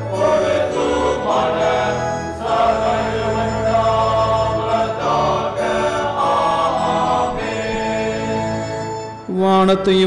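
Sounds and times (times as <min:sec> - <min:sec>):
church choir singing a hymn: 0:00.0 - 0:09.2.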